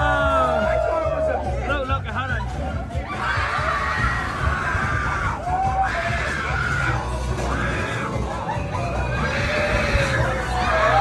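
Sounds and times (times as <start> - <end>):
people screaming: 0.0 - 1.6, 3.0 - 11.0.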